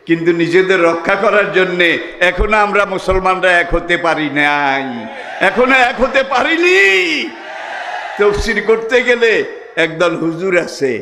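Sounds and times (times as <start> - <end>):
man preaching: 0.0 - 7.4, 8.2 - 11.0.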